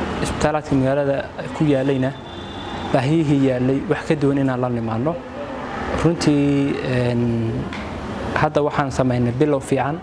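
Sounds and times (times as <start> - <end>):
man speaking: 0.2 - 2.2, 2.9 - 5.3, 6.0 - 7.7, 8.4 - 10.0.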